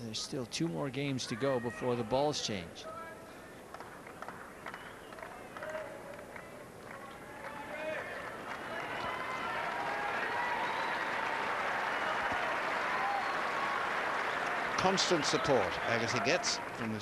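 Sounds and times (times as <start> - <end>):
fans calling out: 0.0 - 3.6, 14.3 - 17.0
crowd applauding and cheering: 3.7 - 17.0.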